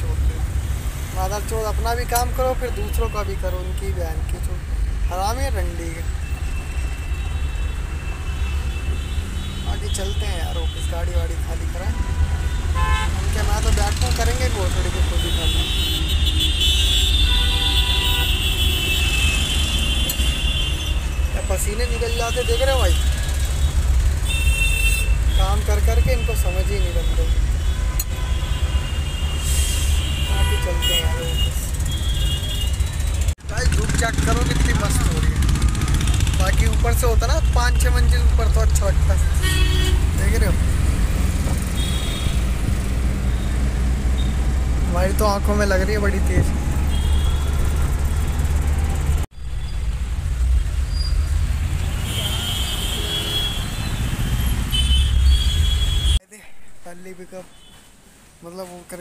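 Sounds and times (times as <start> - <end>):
road noise: 0.0 - 59.0.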